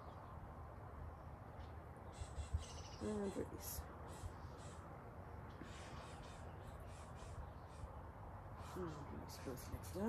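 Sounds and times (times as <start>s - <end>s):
small birds chirping: 0.0s - 0.5s, 1.5s - 10.0s.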